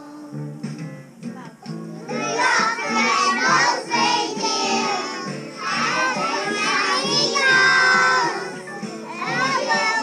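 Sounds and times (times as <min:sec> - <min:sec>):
boy singing into a microphone: 0:00.0 - 0:00.5
backing music: 0:00.0 - 0:10.0.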